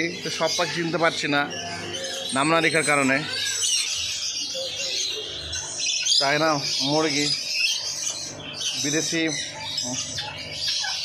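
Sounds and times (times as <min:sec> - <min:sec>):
birds chirping and squawking: 0:00.0 - 0:11.0.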